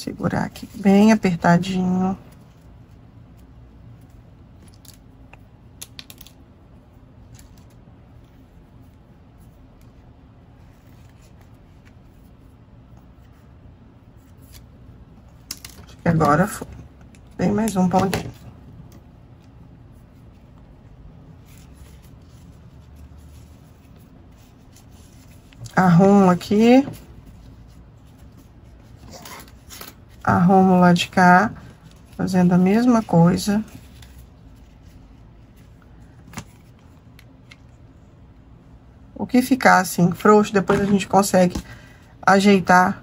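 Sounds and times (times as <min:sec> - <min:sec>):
low room hum: 0:00.0 - 0:43.0
ribbon rustling: 0:00.4 - 0:37.9.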